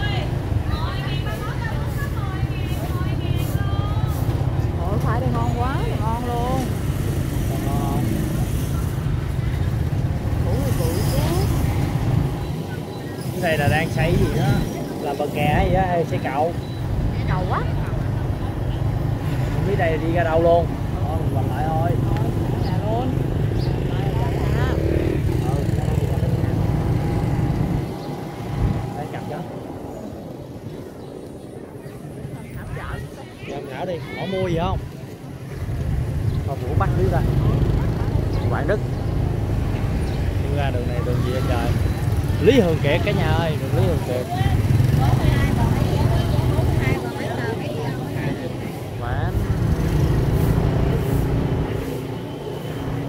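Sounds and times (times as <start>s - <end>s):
motorbike engines rumbling: 0.0s - 53.0s
voices talking and calling out: 0.0s - 53.0s
wind on microphone: 26.3s - 43.2s.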